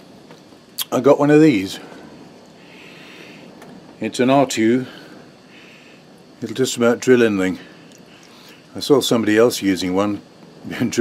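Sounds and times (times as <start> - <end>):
low steady background noise: 0.0 - 11.0.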